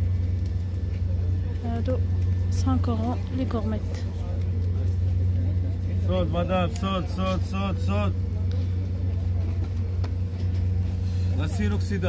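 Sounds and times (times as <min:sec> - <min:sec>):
faint crowd voices: 0:00.0 - 0:12.0
low mechanical hum: 0:00.0 - 0:12.0.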